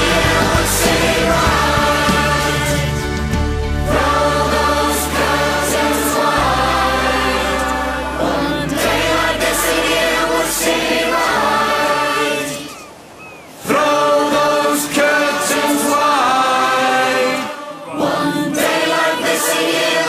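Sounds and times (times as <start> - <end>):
choir singing with band: 0.0 - 13.0, 13.6 - 20.0.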